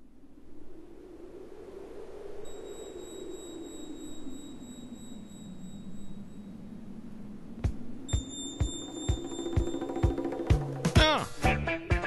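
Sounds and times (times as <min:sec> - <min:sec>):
sinking noise swell: 0:00.0 - 0:10.8
light electronic ticking: 0:02.4 - 0:06.8, 0:07.6 - 0:10.6
thin high tones: 0:02.5 - 0:06.7, 0:08.1 - 0:10.6.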